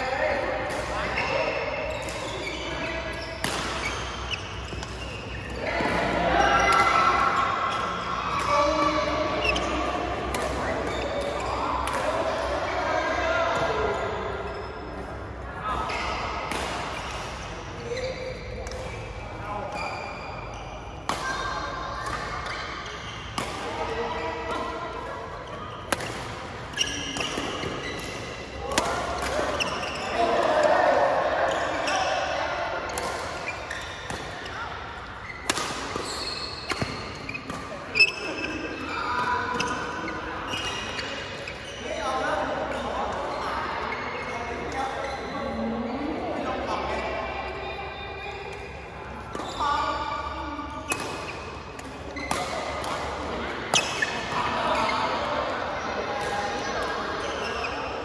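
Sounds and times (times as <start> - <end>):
players' voices: 0.0 - 58.0
shoes squeaking on court: 0.9 - 11.7, 13.5 - 15.1, 22.0 - 30.6, 32.9 - 46.1, 47.7 - 58.0
rackets hitting shuttlecock: 3.4 - 12.6, 16.4 - 19.2, 25.4 - 30.6, 32.9 - 41.6, 50.8 - 54.4.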